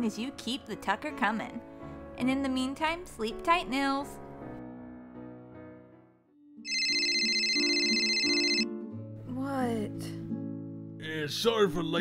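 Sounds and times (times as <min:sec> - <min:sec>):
soft background music: 0:00.0 - 0:12.0
cell phone ringing trill: 0:06.7 - 0:08.7.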